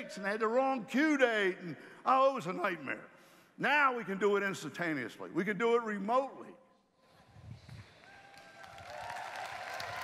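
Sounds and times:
large audience applauding: 7.6s - 10.0s.

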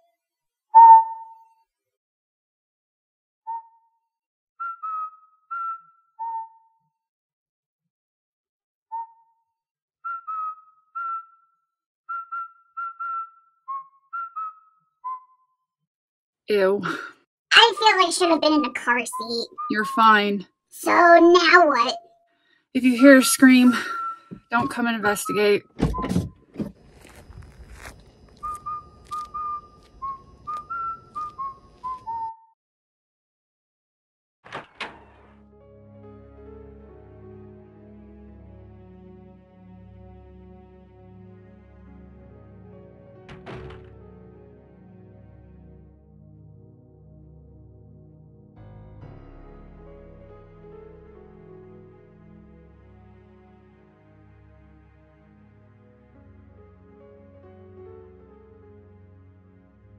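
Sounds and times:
person whistling a tune: 0.8s - 1.5s, 4.6s - 6.8s, 10.1s - 11.5s, 12.1s - 15.5s, 23.2s - 24.5s, 28.4s - 32.6s.

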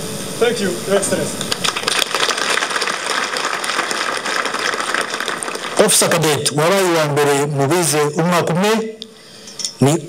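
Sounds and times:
audience applauding: 1.5s - 6.4s.

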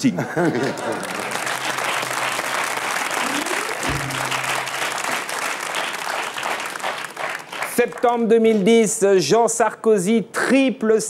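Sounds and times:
studio audience applause: 0.5s - 8.3s
short musical sting: 1.5s - 5.5s.

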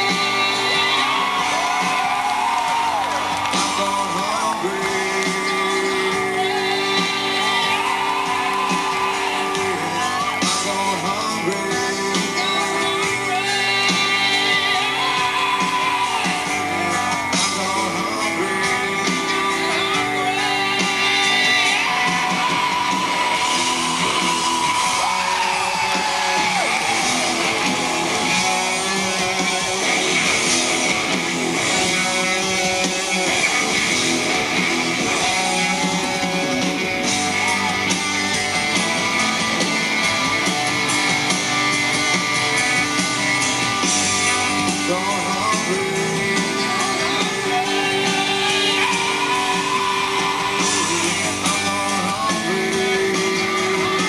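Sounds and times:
drums: 0.0s - 54.0s
electric guitar: 0.0s - 54.0s
live rock band playing: 0.0s - 54.0s
men singing: 3.7s - 22.9s, 44.8s - 54.0s.

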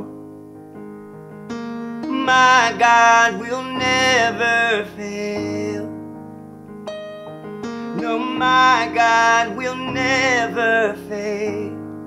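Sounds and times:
digital piano chords: 0.0s - 12.0s.

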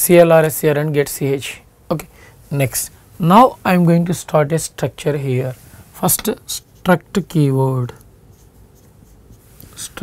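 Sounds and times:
marker scratching on whiteboard: 8.0s - 10.0s.

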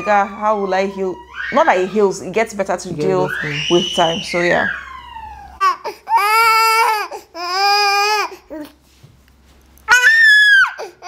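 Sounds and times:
baby crying: 0.0s - 2.3s, 3.0s - 8.7s, 9.9s - 11.0s.

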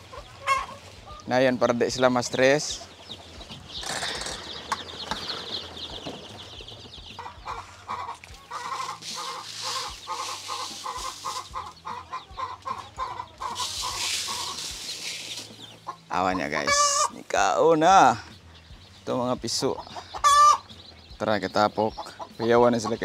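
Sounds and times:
chickens clucking: 0.0s - 23.0s
foil cover rustling: 8.8s - 11.4s, 13.6s - 15.6s
feed pouring from a bag: 13.6s - 15.6s.

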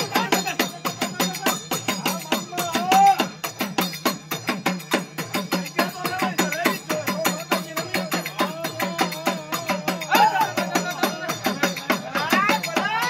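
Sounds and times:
drum beating rapidly: 0.0s - 13.0s.

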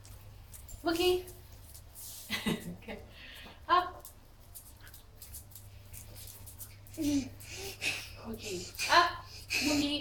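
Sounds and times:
low steady hum: 0.0s - 10.0s
dog claws clicking on tile: 4.0s - 7.0s.

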